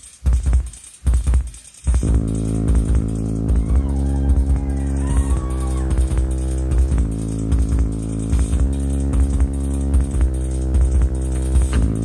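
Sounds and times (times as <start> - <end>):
drum machine beat: 0.0 - 12.0
sustained droning chord: 2.0 - 12.0.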